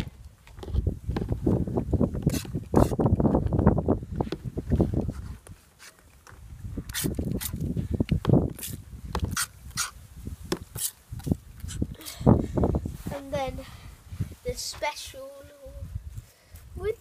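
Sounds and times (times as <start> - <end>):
spray bottle squirting: 6.9 - 7.6, 8.6 - 10.0, 10.7 - 11.0.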